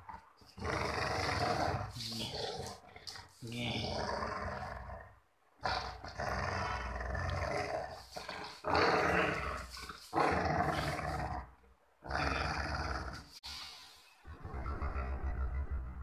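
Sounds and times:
dog play-growling: 0.0 - 13.4.

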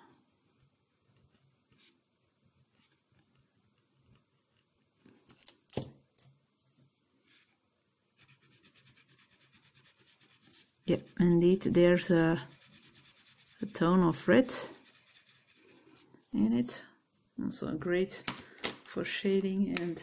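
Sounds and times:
coloured pencil rubbing on paper: 8.2 - 16.1
pen scratching on paper: 8.2 - 16.1.

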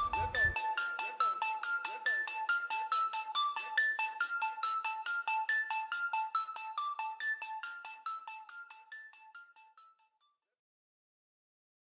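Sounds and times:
bell-like synth melody: 0.0 - 0.7.

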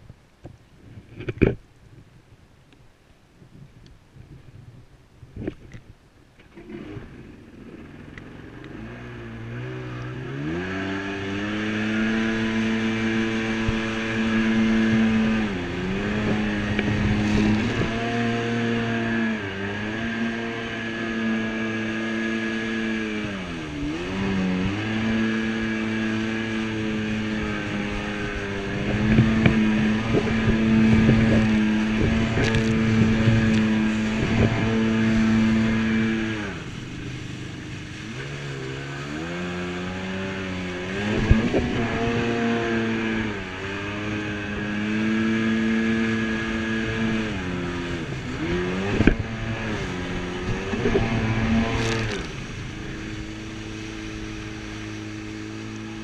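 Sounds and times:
jet ski engine: 4.8 - 56.0
water splashes and hull slaps: 5.4 - 56.0.

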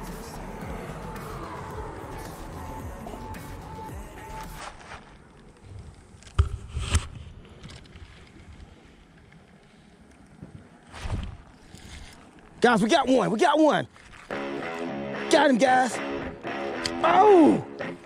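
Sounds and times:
microphone handling noise: 4.6 - 8.7.

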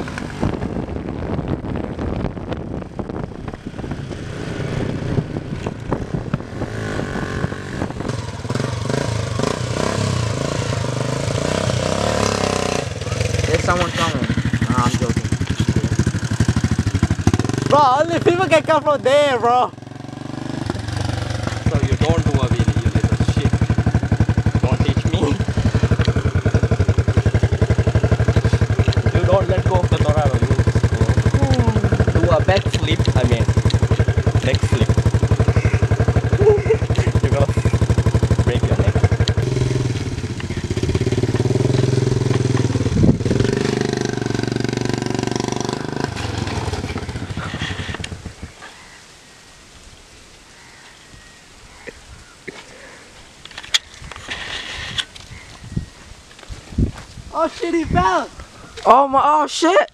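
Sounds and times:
motorbike engine running: 0.0 - 48.4
voices: 12.3 - 16.2, 17.6 - 19.8, 21.6 - 23.6, 24.5 - 39.4, 57.3 - 59.9.

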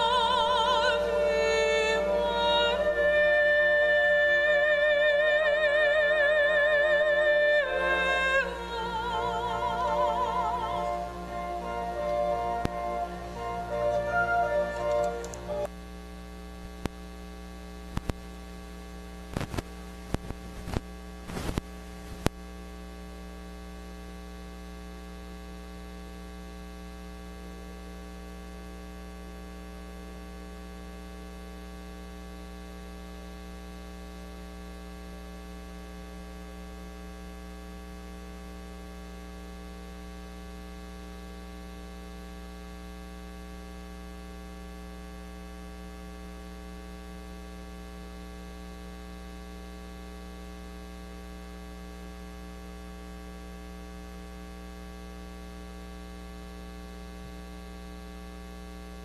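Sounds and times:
electrical mains hum: 0.0 - 59.0.

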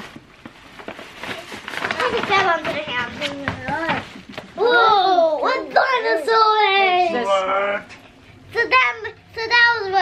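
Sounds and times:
paper gift bag rustling: 0.0 - 4.4.

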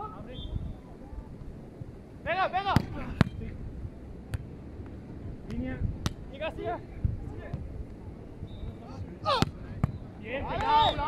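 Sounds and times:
players shouting: 10.4 - 11.0.

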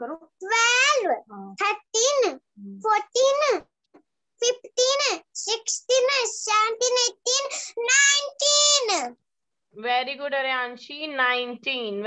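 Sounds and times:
girl counting aloud: 0.4 - 3.7, 4.4 - 9.2.

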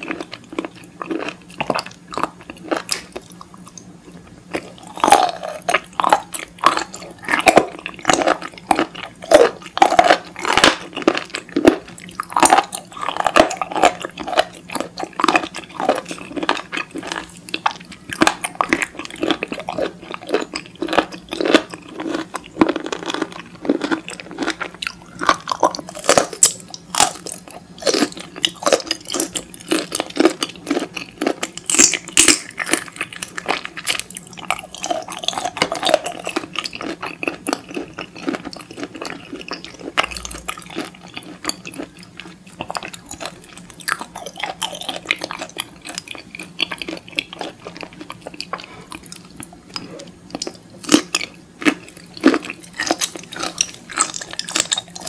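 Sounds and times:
wet chewing clicks: 4.5 - 55.0.

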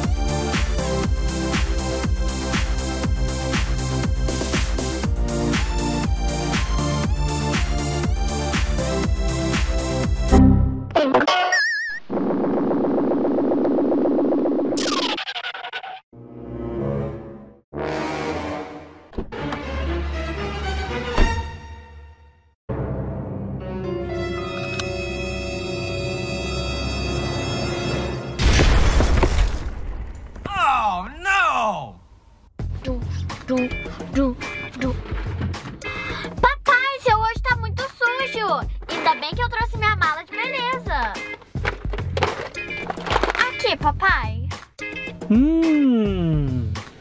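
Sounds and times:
background music with steady beat: 0.0 - 10.6.

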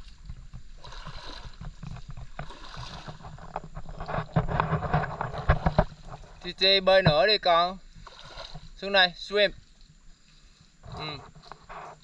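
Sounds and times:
splashing in shallow water: 0.0 - 12.0.

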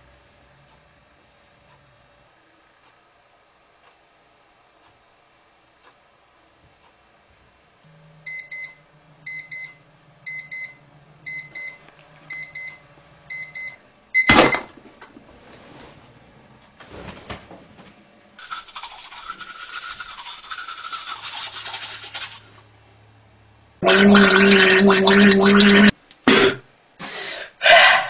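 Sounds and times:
toothbrush scrubbing teeth: 18.4 - 22.6.

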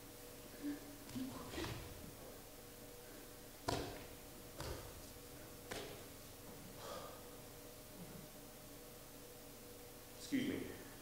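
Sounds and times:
low room hum: 0.0 - 11.0
performers grappling on stage: 1.0 - 2.2, 3.7 - 6.2.

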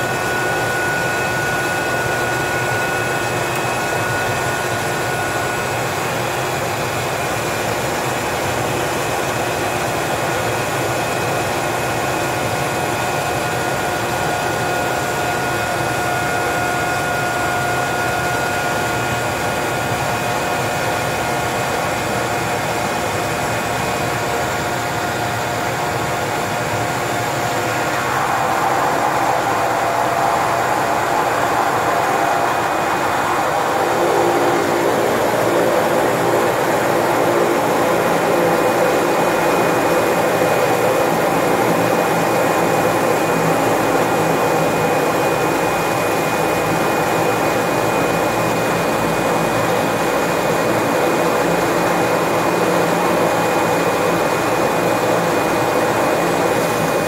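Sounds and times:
propeller plane engine running: 0.0 - 57.0
steady engine whine: 0.0 - 57.0.

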